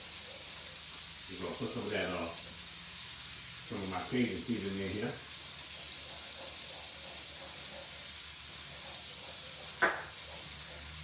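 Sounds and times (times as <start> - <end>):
fish sizzling in a skillet: 0.0 - 11.0
sharp knock: 9.8 - 10.1.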